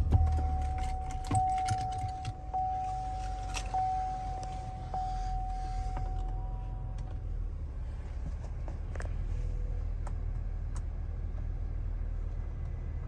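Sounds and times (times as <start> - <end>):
handling clicks and rattles: 0.0 - 3.8.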